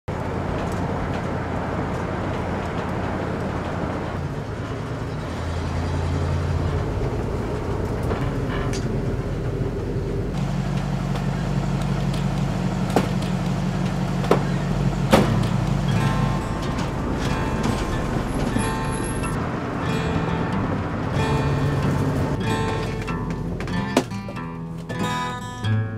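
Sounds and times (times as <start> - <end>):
road noise: 0.0 - 25.6
van engine hum: 0.1 - 25.8.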